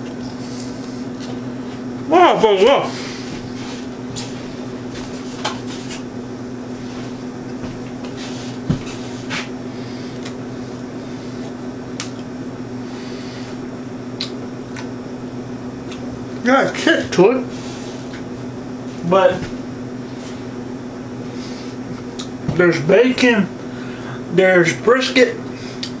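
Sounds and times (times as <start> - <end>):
low electrical hum: 0.0 - 26.0
mouth chewing clicks and smacks: 14.2 - 14.9.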